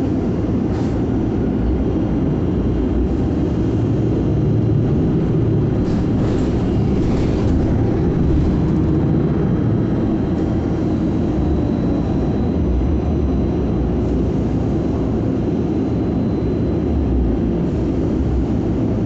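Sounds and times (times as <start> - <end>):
bus engine and road rumble: 0.0 - 19.0.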